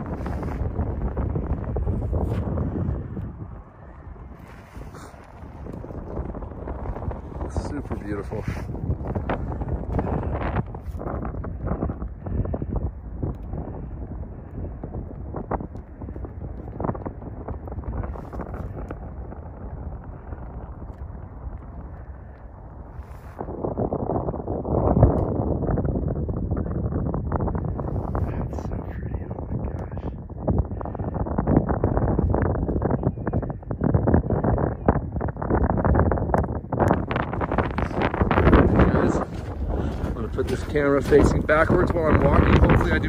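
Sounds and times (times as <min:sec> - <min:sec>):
wind buffeting microphone: 0:00.0 - 0:43.0.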